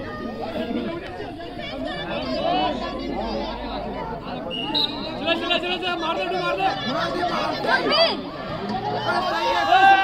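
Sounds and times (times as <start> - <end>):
many voices chattering: 0.0 - 10.0.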